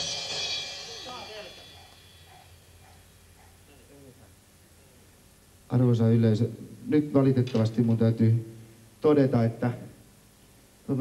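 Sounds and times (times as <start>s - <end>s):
cymbal crash ringing: 0.0s - 2.8s.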